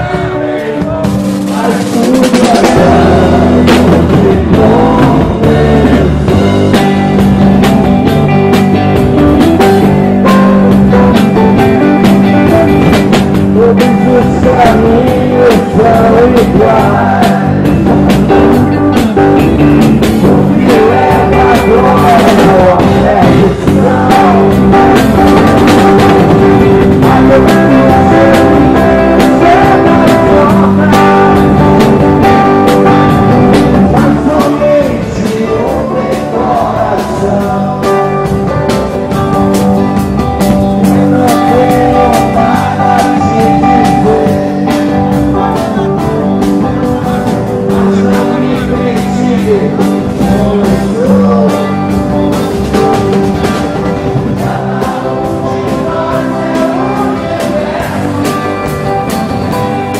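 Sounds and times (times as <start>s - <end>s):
person singing: 0.0s - 39.9s, 40.5s - 59.9s
bass and drums: 0.0s - 59.9s
electric guitar: 0.0s - 59.9s.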